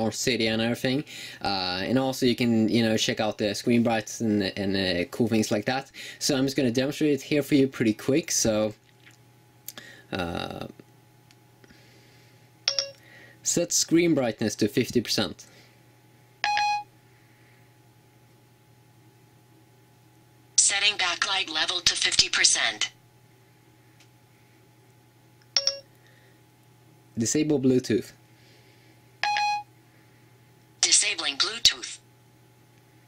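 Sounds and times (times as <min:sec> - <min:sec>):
phone activation beeps: 0:16.4 - 0:16.9, 0:25.5 - 0:25.9, 0:29.2 - 0:29.7.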